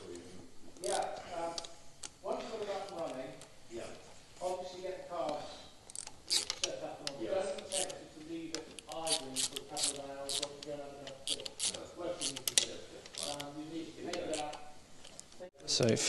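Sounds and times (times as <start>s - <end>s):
people talking: 0.0s - 5.6s, 6.6s - 14.6s, 15.6s - 16.0s
hand ratchet clicking: 5.9s - 15.2s.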